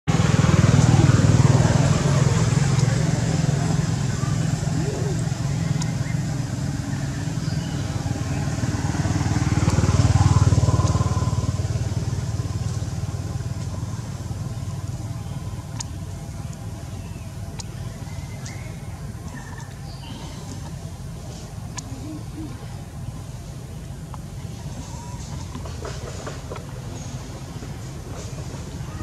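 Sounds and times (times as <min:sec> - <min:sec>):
motor engine running: 0:00.1 - 0:29.0.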